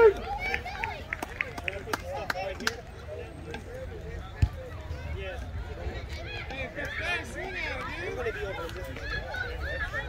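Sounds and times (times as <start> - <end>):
voices chattering and calling out: 0.0 - 10.0.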